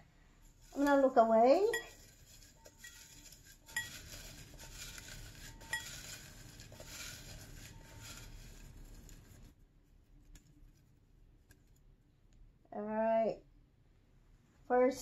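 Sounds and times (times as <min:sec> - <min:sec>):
paper slips rustling: 0:01.8 - 0:09.5.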